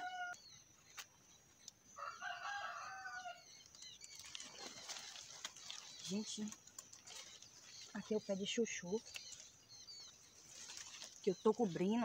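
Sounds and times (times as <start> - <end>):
faint rooster crowing: 0.0 - 0.4, 2.0 - 3.5.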